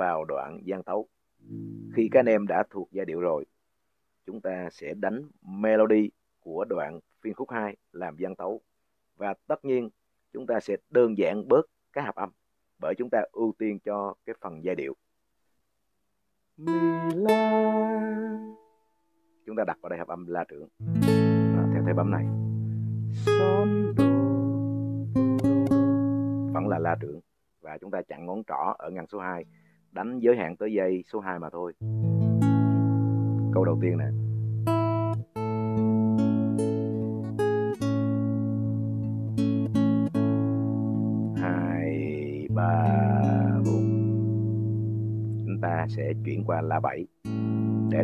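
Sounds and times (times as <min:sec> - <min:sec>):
guitar note plucked and sliding: 0:01.4 - 0:02.2, 0:20.8 - 0:27.1, 0:31.8 - 0:48.0
low guitar bass note ringing: 0:40.3 - 0:46.7.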